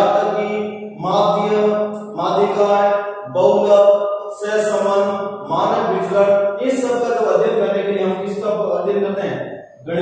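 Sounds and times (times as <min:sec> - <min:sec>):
man lecturing: 0:00.0 - 0:10.0.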